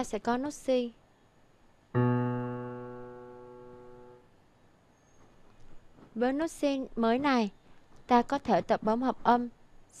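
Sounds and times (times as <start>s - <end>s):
electronic keyboard piano note: 2.0s - 4.2s.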